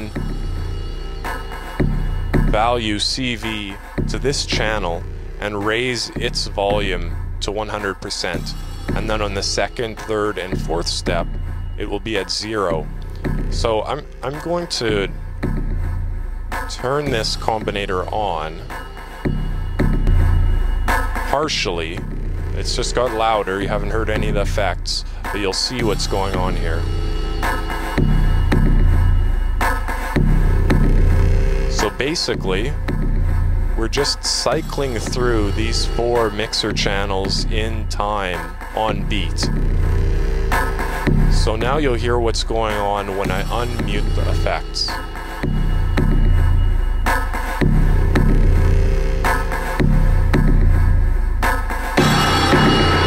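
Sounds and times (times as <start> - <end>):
electronic drum hits: 0.0 - 3.2, 18.6 - 21.4, 25.8 - 33.7, 43.2 - 53.0
low synth bass notes: 0.0 - 53.0.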